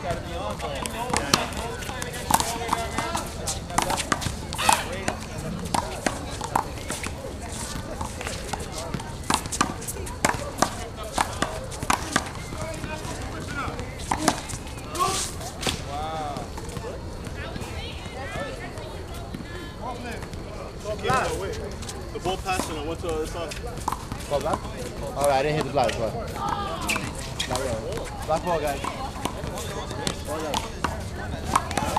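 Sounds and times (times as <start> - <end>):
footsteps on court: 0.0 - 31.9
voices calling out: 0.0 - 31.9.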